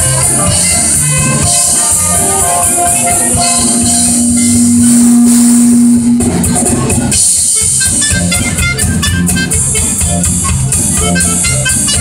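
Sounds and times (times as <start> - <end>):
dixieland jazz band playing: 0.0 - 12.0
held low note: 1.6 - 7.4.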